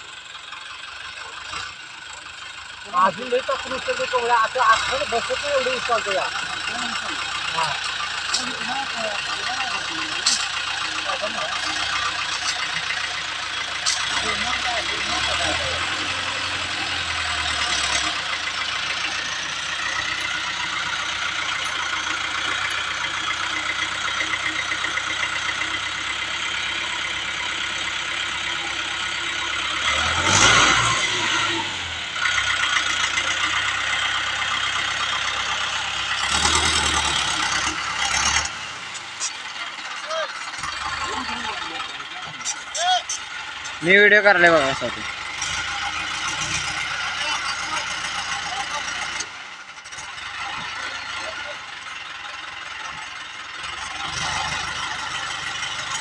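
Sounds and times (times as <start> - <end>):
tractor diesel engine running: 0.0 - 56.0
people's voices: 2.7 - 25.8, 36.8 - 45.3, 46.0 - 49.4, 50.4 - 53.1.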